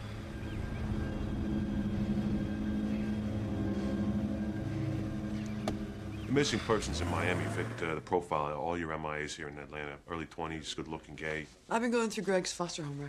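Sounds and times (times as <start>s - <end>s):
car engine running: 0.5s - 8.1s.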